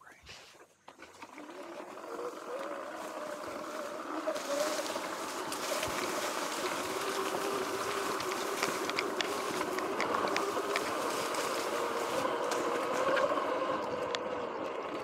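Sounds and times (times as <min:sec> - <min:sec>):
electric motorbike motor whining: 0:00.9 - 0:15.0
grass swishing against bike: 0:01.0 - 0:14.7.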